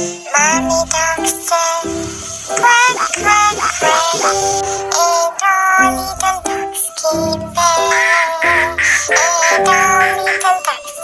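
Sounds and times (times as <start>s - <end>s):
children's backing music: 0.0s - 11.0s
cartoon duck quacks: 7.6s - 10.8s.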